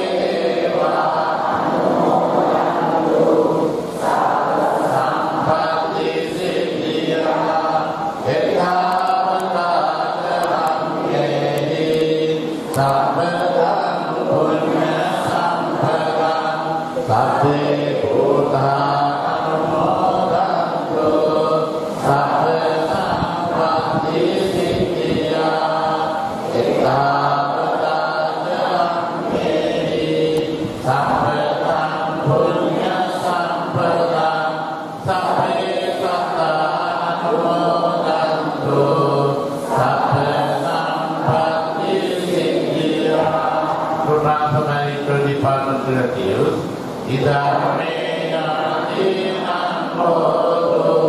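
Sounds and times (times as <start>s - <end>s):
congregation chanting prayers: 0.0s - 51.0s.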